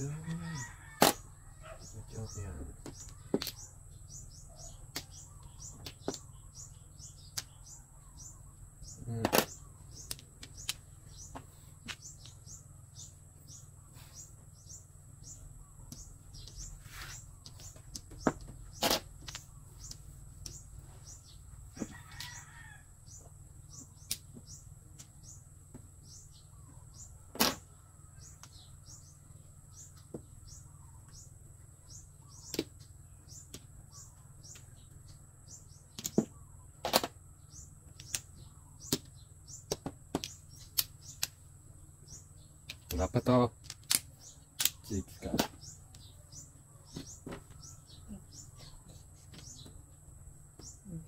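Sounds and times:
small birds chirping: 0.0 - 51.0.

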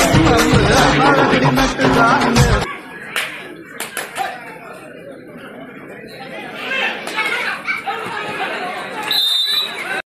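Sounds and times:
people talking and calling out: 0.0 - 10.0.

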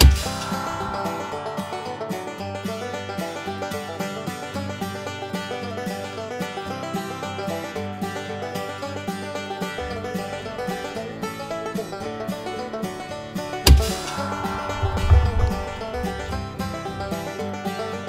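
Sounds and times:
background music: 0.0 - 5.0, 9.5 - 18.0
plucked-string notes: 0.0 - 6.5, 8.4 - 18.0.

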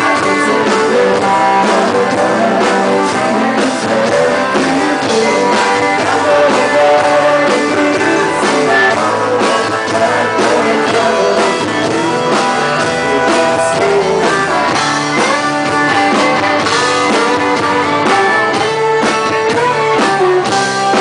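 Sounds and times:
electric guitar: 0.0 - 21.0
fiddle: 0.0 - 21.0
steady drum beat: 0.0 - 21.0.

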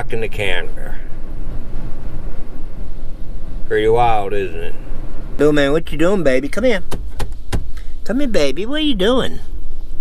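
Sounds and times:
wind buffeting trailer: 0.0 - 10.0.

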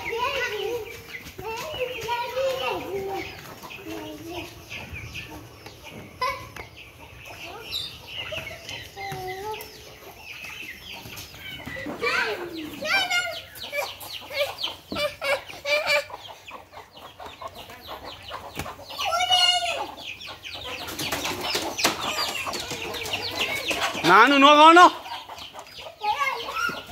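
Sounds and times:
hens clucking: 0.0 - 26.9
hens squawking: 0.0 - 26.9.

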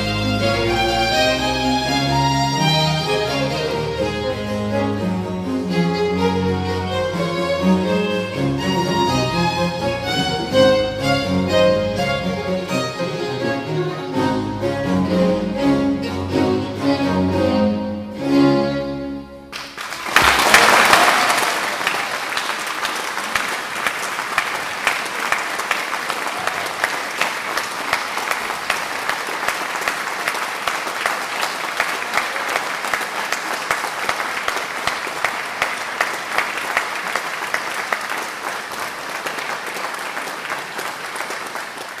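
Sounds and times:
audience applauding: 19.5 - 42.0.

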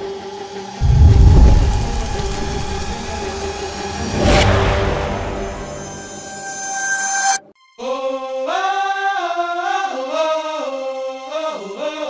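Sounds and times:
deep boom: 0.8 - 3.8
loud whoosh: 0.8 - 6.2.

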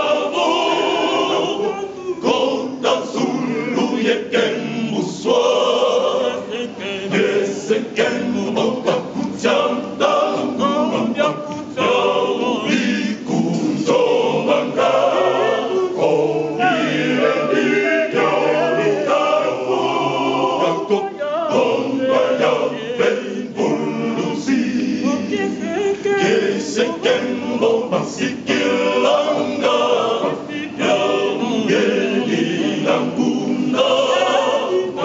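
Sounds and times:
men's choir singing: 0.0 - 35.0.

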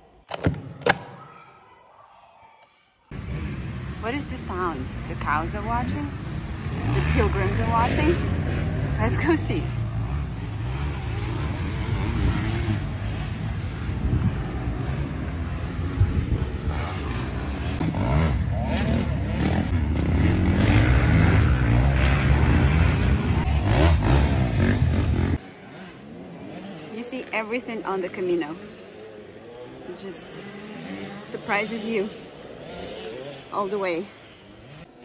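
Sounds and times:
dirt bike engines revving: 3.1 - 35.0.

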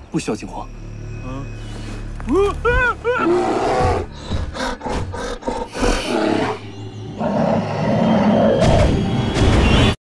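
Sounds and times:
bear growling and roaring: 3.2 - 8.9.

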